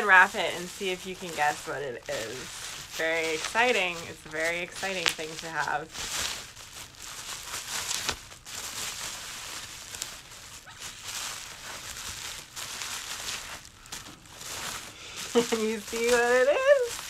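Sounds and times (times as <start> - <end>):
bubble wrap rustling and crinkling: 0.0 - 17.0.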